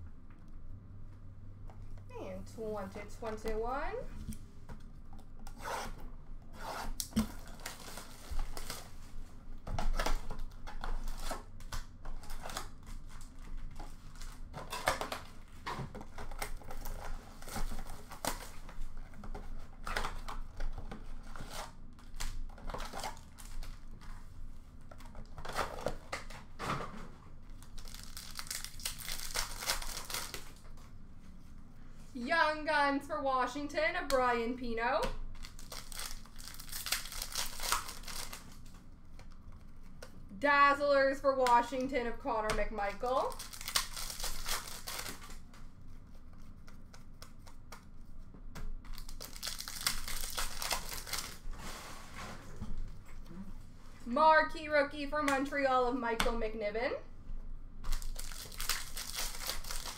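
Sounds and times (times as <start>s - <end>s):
wrappers tearing and crinkling: 7.0s - 24.2s, 27.5s - 30.6s, 35.3s - 40.0s, 43.0s - 45.6s, 48.9s - 51.6s, 57.9s - 59.9s.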